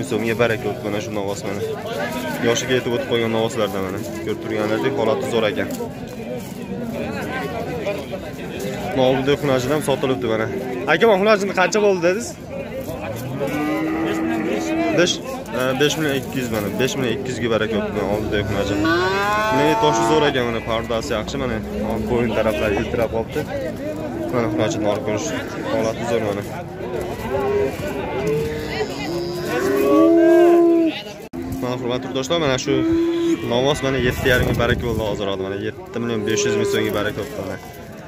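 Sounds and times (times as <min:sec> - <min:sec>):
cow mooing: 0:13.4 - 0:15.2, 0:18.3 - 0:20.6, 0:27.4 - 0:30.9, 0:32.0 - 0:33.9
calf mooing: 0:18.4 - 0:20.6.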